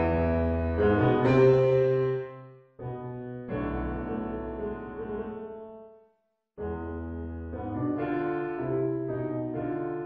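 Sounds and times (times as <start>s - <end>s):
slow piano ballad: 0.0s - 5.9s, 6.6s - 10.0s.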